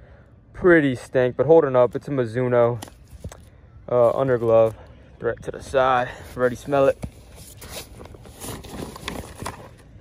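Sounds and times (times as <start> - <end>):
fabric bag rustling and scraping: 6.3 - 10.0.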